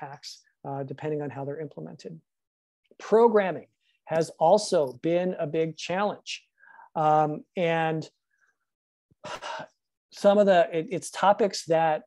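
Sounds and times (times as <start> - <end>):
man breathing in: 6.6 - 6.9.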